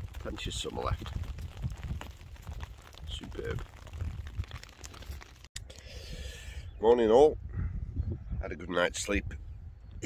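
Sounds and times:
rain ticking on umbrella: 0.0 - 5.5
wind rumble on microphone: 0.0 - 10.0.

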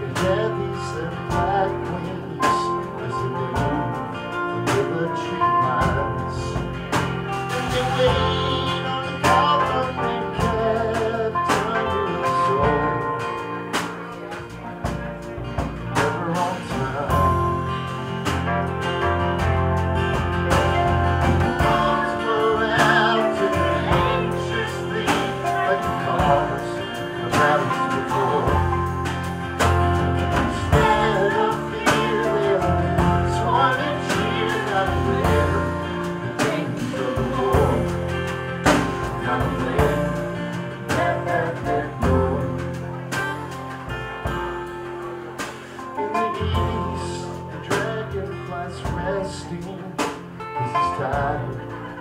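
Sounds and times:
man singing: 0.0 - 18.8, 20.5 - 43.7, 45.3 - 52.0
acoustic guitars strumming: 0.0 - 52.0
drums: 0.0 - 52.0
upright bass: 0.0 - 52.0.

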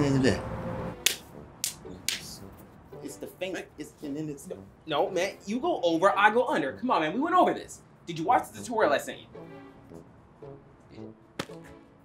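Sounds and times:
hands slapping together: 1.0 - 2.3, 11.4 - 11.6.

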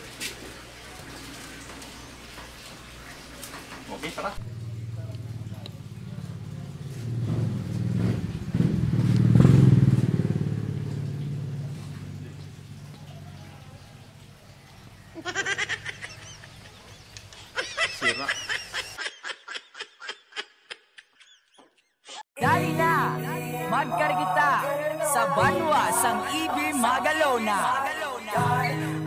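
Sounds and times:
motorcycle engine: 4.0 - 15.2.

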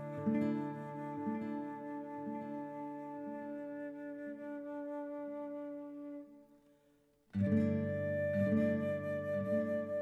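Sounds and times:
flute holding long notes: 0.0 - 6.6, 7.4 - 10.0.

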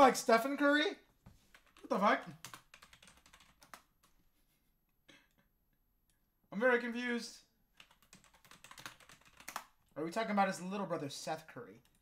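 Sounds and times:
computer keyboard typing: 1.5 - 4.1, 7.8 - 9.8.

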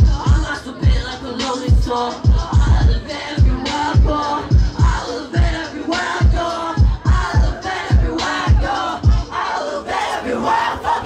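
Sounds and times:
rapper shouting over a beat: 0.0 - 9.4
crowd shouting: 4.8 - 11.0.

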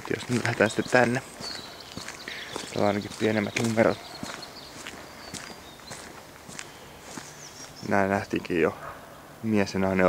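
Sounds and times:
footsteps on gravel: 0.0 - 8.0.

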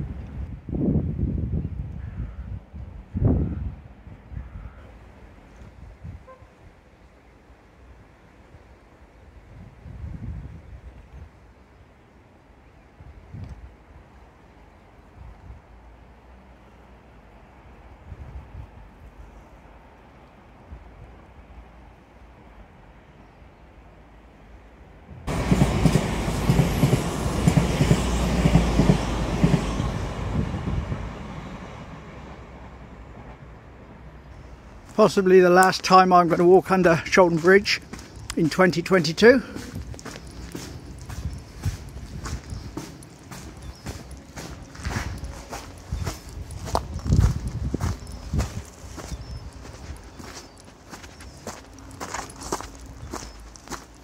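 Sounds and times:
quiet outdoor background: 0.0 - 54.0
train passing rumble: 23.8 - 54.0.

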